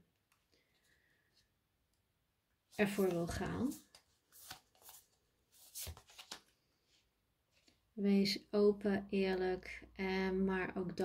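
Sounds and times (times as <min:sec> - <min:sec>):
cards sliding and flicking: 0:02.9 - 0:06.5.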